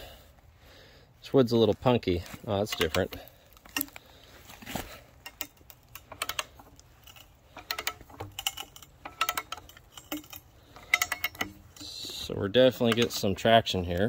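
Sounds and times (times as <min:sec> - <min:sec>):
metallic ratchet clicks: 0:05.2 - 0:14.0.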